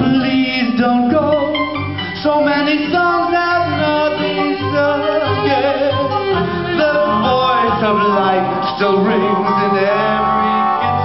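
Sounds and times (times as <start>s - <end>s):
man singing: 0.0s - 11.0s
melodic lines with vibrato: 0.0s - 11.0s
string band playing: 0.0s - 11.0s.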